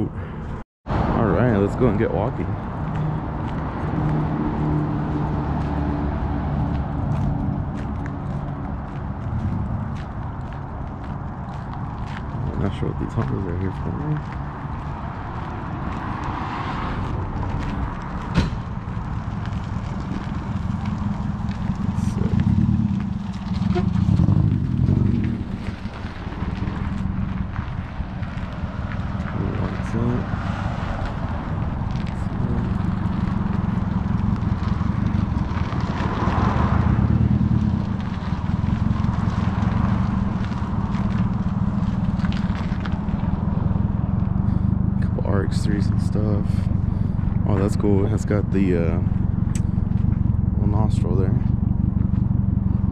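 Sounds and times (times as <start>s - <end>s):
steady low rumble: 0.0s - 52.9s.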